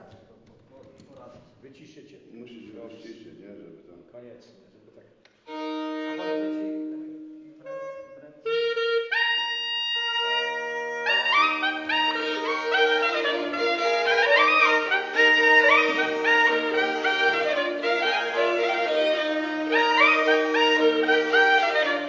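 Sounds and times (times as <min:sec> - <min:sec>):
separate instrument notes: 0:05.4 - 0:22.0
bagpipe drone: 0:05.5 - 0:22.0
folk band playing lively tune: 0:08.6 - 0:22.0.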